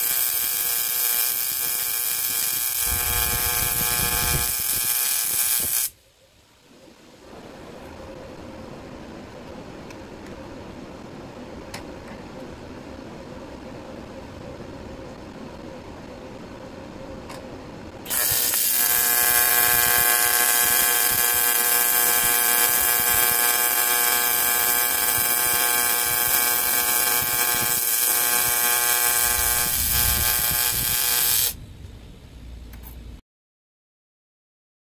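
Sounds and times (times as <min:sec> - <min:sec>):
welding arc buzzing and crackling: 0:00.0 - 0:06.0, 0:18.0 - 0:31.6
quiet steady background noise: 0:00.0 - 0:33.2.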